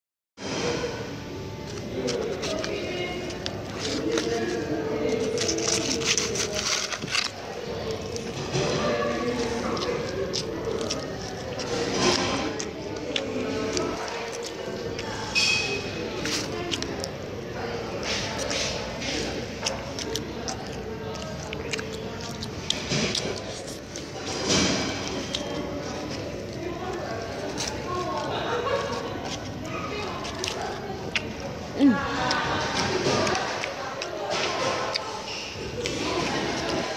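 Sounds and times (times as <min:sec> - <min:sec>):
indistinct chatter of voices: 0:00.4 - 0:36.9.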